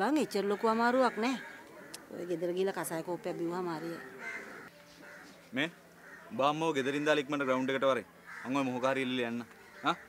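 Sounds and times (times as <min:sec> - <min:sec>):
crow calling faintly: 0:00.0 - 0:06.7, 0:07.3 - 0:10.0.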